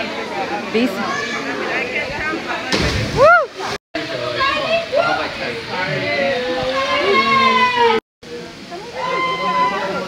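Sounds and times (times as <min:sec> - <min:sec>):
splash into water: 0:02.6 - 0:03.8.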